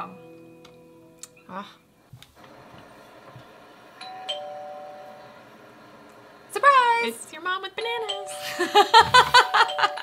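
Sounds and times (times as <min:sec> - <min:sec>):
ding-dong doorbell chime: 0:04.0 - 0:05.2, 0:08.0 - 0:08.8.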